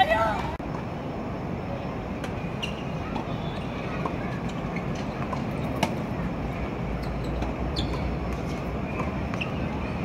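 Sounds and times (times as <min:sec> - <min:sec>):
urban traffic rumble: 0:00.0 - 0:10.0.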